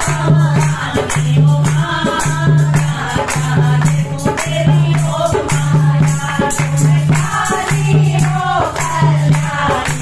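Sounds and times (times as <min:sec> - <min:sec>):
hand claps: 0:00.0 - 0:10.0
women singing together: 0:00.0 - 0:10.0.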